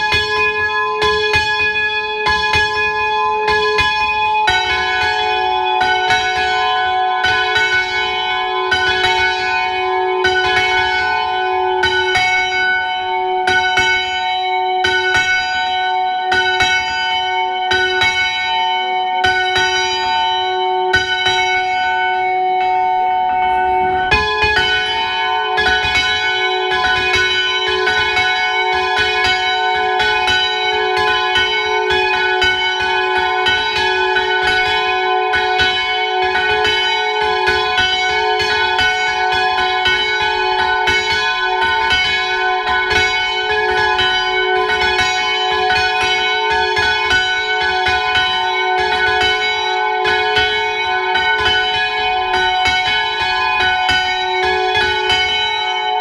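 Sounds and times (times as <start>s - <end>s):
higher bell ringing: 0.0s - 56.0s
large church bell ringing: 0.0s - 56.0s.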